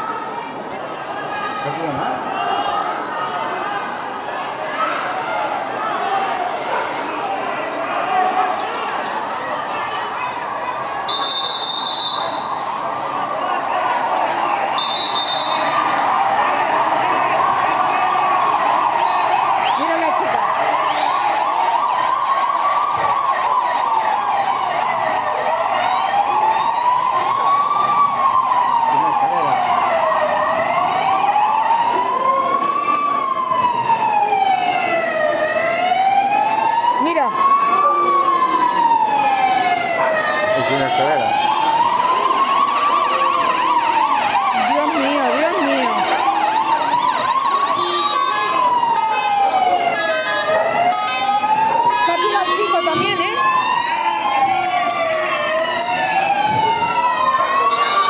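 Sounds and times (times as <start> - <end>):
second siren: 0.0 - 58.0
wailing emergency siren: 0.0 - 58.0.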